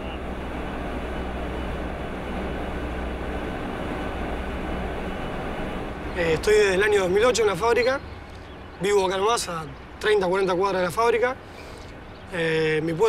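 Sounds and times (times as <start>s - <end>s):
mill machinery running: 0.0s - 7.5s
strong low hum: 0.0s - 8.9s.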